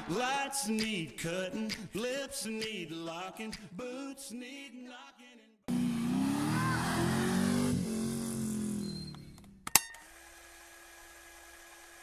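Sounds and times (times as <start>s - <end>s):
vehicle engine with falling pitch: 5.7s - 9.6s
sharp click: 9.1s - 10.0s.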